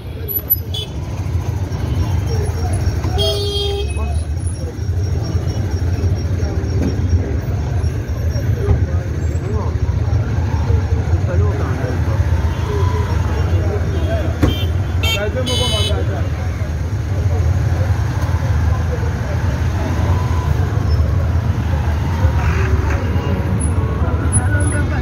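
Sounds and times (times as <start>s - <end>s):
dense street traffic: 0.0s - 25.0s
motorcycle engine and road rumble: 0.0s - 25.0s
people's voices: 0.0s - 25.0s.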